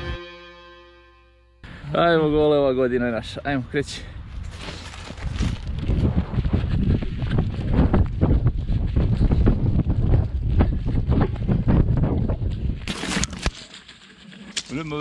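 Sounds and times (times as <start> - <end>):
wind buffeting microphone: 4.2 - 12.9.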